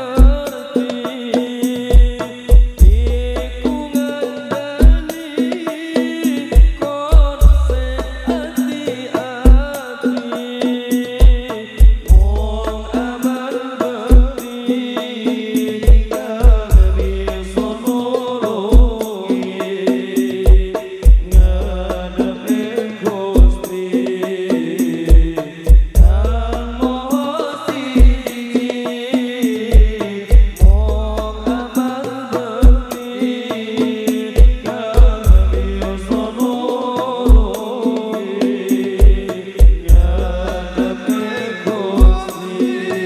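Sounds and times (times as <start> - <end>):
men singing in chanting style: 0.0 - 43.0
percussion ensemble: 0.0 - 43.0
deep booming drum strokes: 1.9 - 4.0, 6.5 - 8.6, 11.2 - 13.2, 15.9 - 17.9, 20.5 - 22.5, 25.1 - 27.2, 29.6 - 31.8, 34.4 - 36.4, 38.9 - 41.1.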